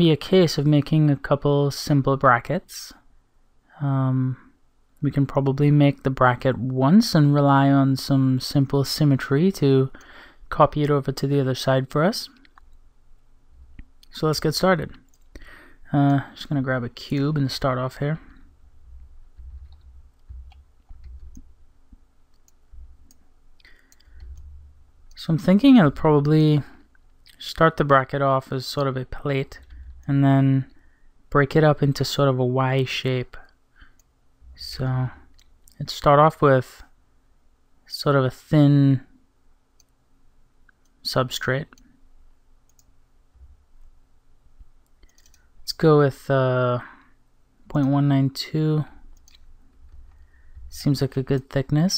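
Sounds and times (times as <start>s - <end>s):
man speaking: 0.0s - 3.0s, 3.7s - 12.5s, 14.0s - 15.1s, 15.8s - 18.5s, 25.1s - 33.5s, 34.5s - 36.9s, 37.9s - 39.1s, 41.0s - 41.8s, 45.6s - 47.0s, 47.7s - 49.0s, 50.7s - 51.9s
low background rumble: 18.3s - 25.2s
computer mouse clicks: 19.4s - 21.5s, 22.3s - 24.5s, 42.7s - 42.9s, 44.6s - 45.5s, 49.1s - 50.6s.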